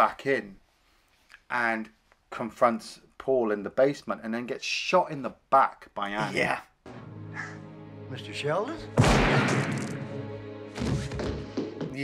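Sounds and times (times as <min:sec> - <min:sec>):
tense film score: 0:06.8 - 0:12.0
body hitting the floor: 0:10.7 - 0:12.0.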